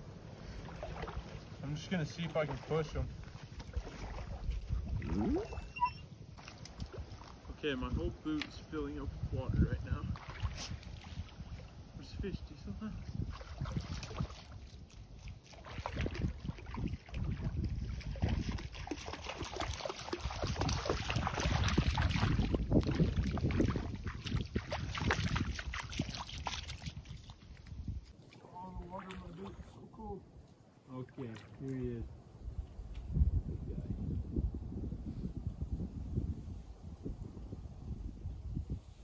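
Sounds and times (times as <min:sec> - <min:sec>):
water splashing and sloshing: 0:00.0 - 0:33.1.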